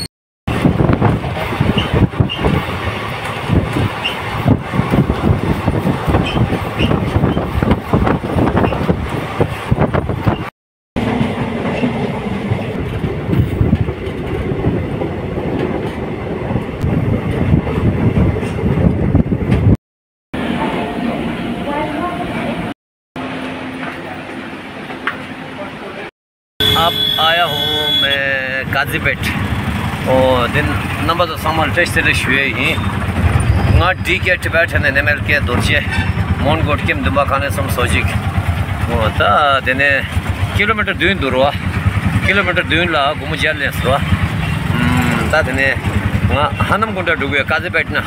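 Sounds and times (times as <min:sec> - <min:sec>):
train wheels clattering on rails: 0:35.0 - 0:38.9.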